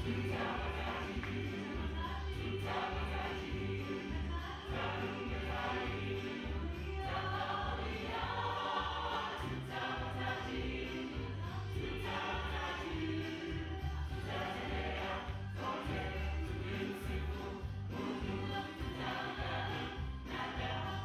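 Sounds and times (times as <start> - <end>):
gospel choir singing: 0.0 - 21.0
repeating bass beat: 0.0 - 21.0.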